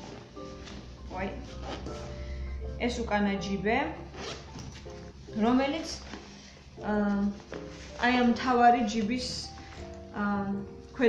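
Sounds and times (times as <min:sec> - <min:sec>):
zipper pulled open: 0:01.4 - 0:02.1, 0:04.1 - 0:04.8.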